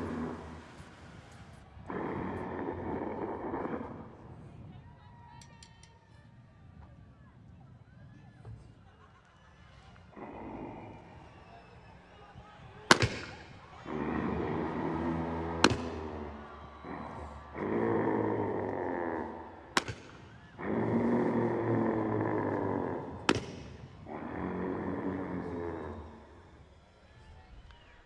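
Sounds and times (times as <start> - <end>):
deep growling groans over loudspeakers: 0.0 - 5.0, 9.7 - 28.0
sharp crack: 12.9 - 13.8, 14.6 - 16.6, 19.7 - 20.5, 23.2 - 24.0.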